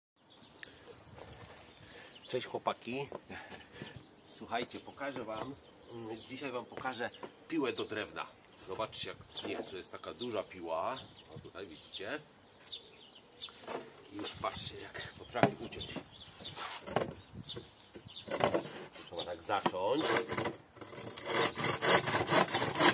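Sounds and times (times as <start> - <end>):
saw knocking on wood: 19.6 - 22.9.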